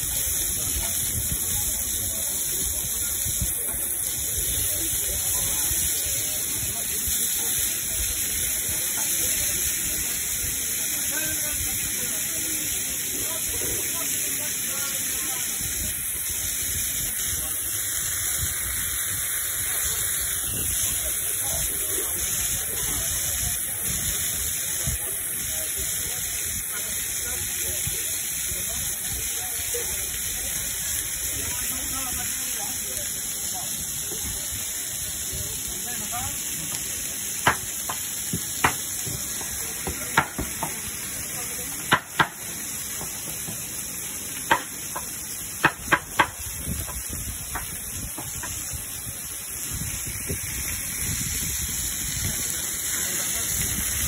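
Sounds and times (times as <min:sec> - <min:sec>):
chicken sizzling on griddle: 0:00.0 - 0:54.0.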